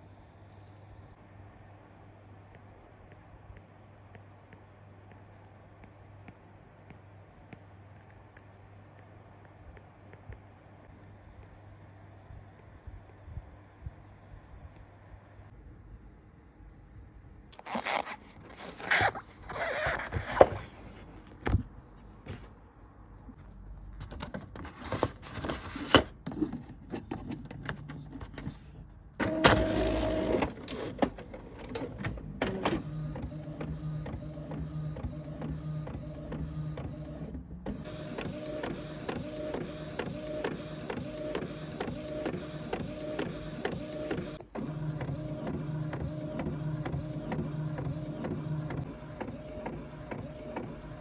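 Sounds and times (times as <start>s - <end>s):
inkjet printer printing: 29.2s - 51.0s.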